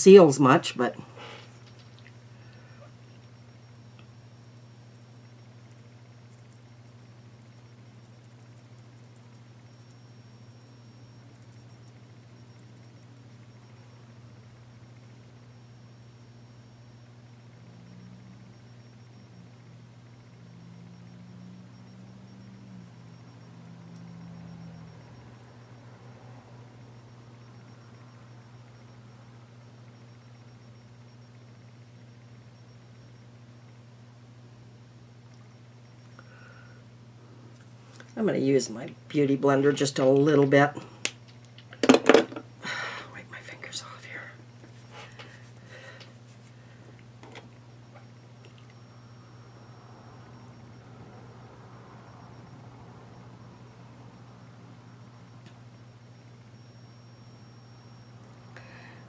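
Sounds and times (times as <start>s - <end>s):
faint high-pitched whine: 0.0s - 59.0s
low electrical hum: 0.0s - 59.0s
short flat hum tones: 0.0s - 59.0s.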